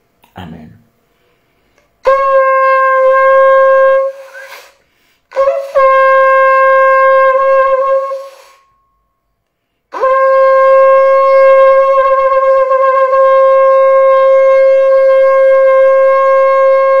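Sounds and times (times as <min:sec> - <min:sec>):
horn blown in a long blast: 0:02.0 - 0:09.2, 0:09.9 - 0:17.0.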